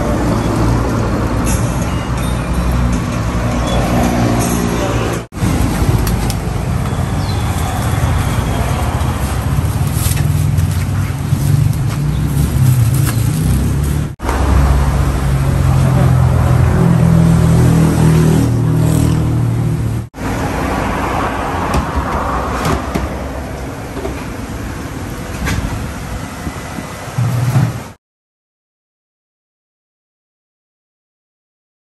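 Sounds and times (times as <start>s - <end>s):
engine and traffic rumble: 0.0s - 28.0s.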